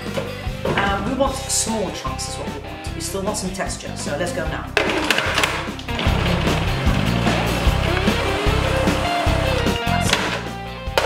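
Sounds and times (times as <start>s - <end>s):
background music: 0.0s - 11.0s
food processor chopping: 4.8s - 11.0s.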